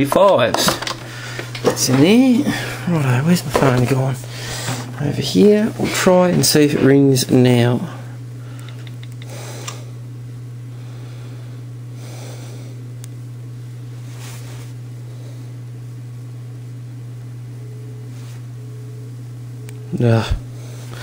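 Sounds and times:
steady low hum: 0.0s - 21.0s
soft rustles: 13.9s - 14.8s, 18.1s - 18.5s.

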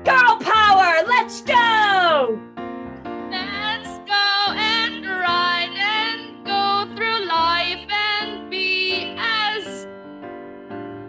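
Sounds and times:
keyboard accompaniment: 0.0s - 11.0s
woman singing with vibrato: 3.4s - 9.8s.

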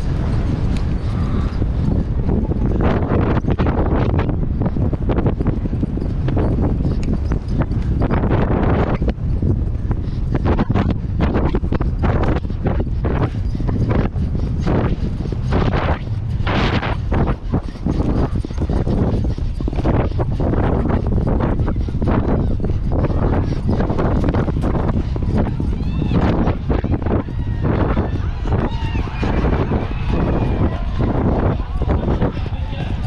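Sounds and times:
hoofbeats galloping on turf: 0.0s - 33.0s
wind buffeting microphone: 0.0s - 33.0s.

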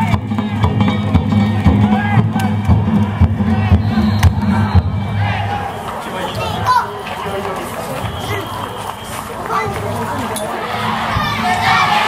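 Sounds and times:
crowd shouting: 0.0s - 12.0s
festival drums and gongs: 0.0s - 12.0s.

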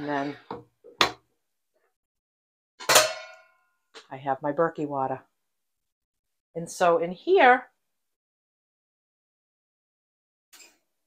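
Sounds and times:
metallic clang: 2.8s - 3.6s.

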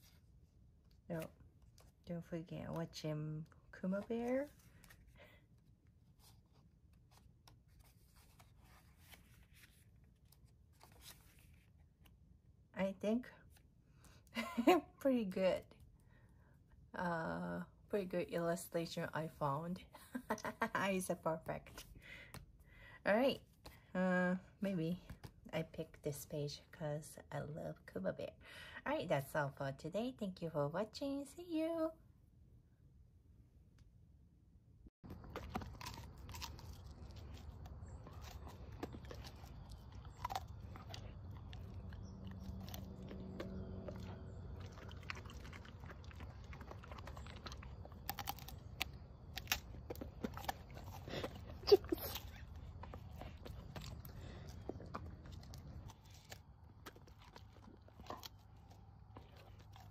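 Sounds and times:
low room hum: 0.0s - 59.9s
paper rustling: 6.1s - 12.1s
page turning: 6.3s - 12.1s
dog crunching raw turnip: 35.0s - 59.9s.

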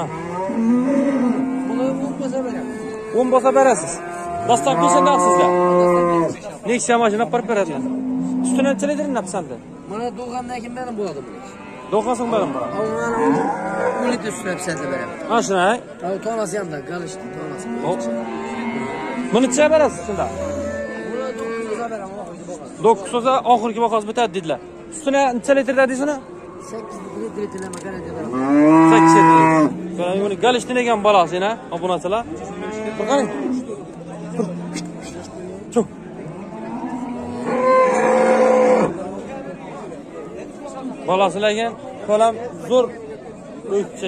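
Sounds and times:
calf mooing: 0.0s - 6.4s, 16.8s - 21.9s, 28.0s - 29.8s
cow mooing: 0.0s - 6.4s, 7.6s - 9.4s, 11.1s - 15.5s, 16.6s - 22.0s, 26.1s - 30.2s, 32.4s - 34.8s, 36.3s - 39.0s
crowd murmur: 0.0s - 44.0s.

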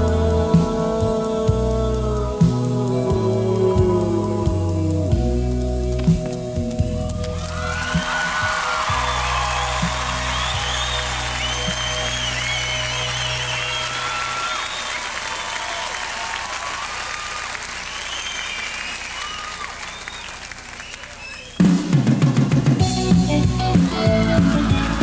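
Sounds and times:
audience applauding: 7.1s - 25.0s
high whistles: 7.2s - 22.0s.

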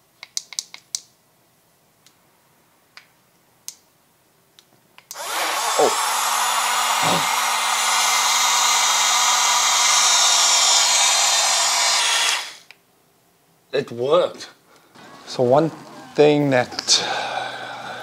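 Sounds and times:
small clicks: 0.2s - 1.1s
cup blender motor whirring: 5.1s - 12.6s.

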